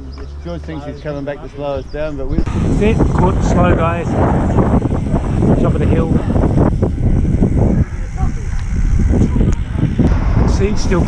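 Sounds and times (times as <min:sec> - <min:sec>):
wind rumbling on microphone: 0:00.6 - 0:11.0.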